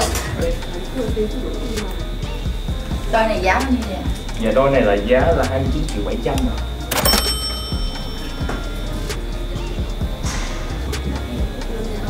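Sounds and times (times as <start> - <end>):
background music with light beat: 0.0 - 12.0
bright chime ding: 6.9 - 9.1.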